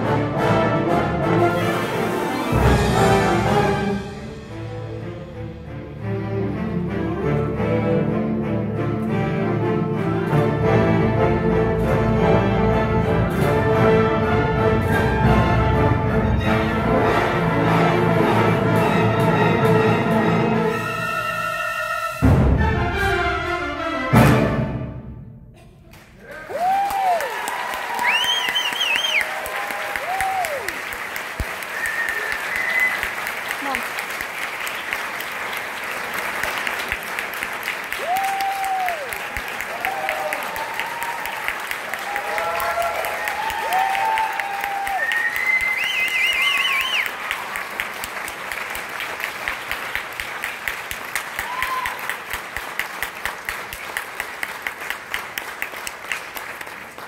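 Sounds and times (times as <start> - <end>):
audience applauding: 25.9 - 57.0
cheering shouts: 26.2 - 30.8, 38.0 - 47.0, 51.4 - 52.2
warbling whistles: 28.1 - 29.3, 31.7 - 33.2, 45.0 - 47.1.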